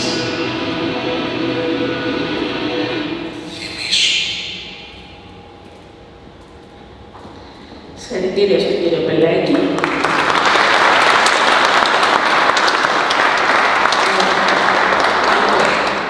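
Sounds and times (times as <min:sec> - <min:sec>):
drone-like music over loudspeakers: 0:00.0 - 0:07.8.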